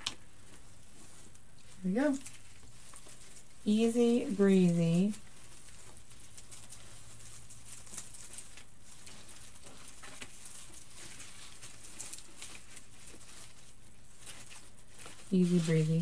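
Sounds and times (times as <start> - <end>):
plastic sprigs rustling and crackling: 0.0 - 16.0.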